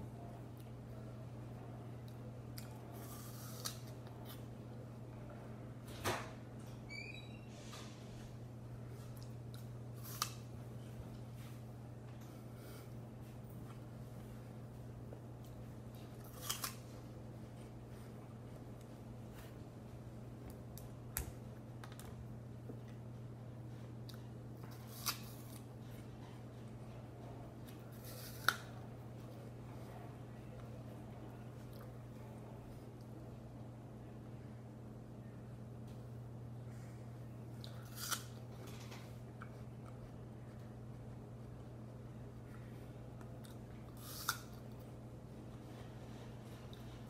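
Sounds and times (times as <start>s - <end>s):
steady low hum: 0.0s - 47.0s
person crunching an apple: 2.5s - 4.5s, 9.1s - 10.5s, 15.4s - 17.0s, 24.1s - 25.7s, 27.7s - 28.8s, 37.6s - 40.6s, 43.2s - 44.8s
faint chewing: 37.5s - 47.0s.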